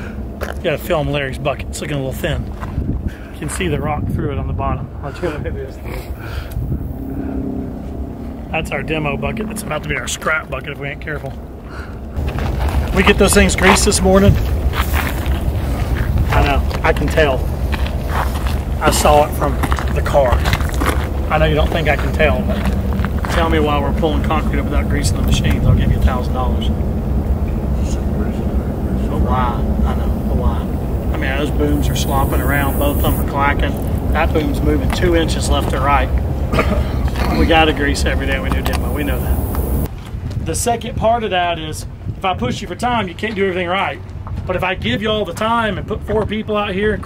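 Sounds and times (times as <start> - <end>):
diesel engine rumbling: 0.0 - 39.9
person speaking: 8.5 - 11.4, 21.3 - 26.8, 27.6 - 34.9, 37.2 - 39.8.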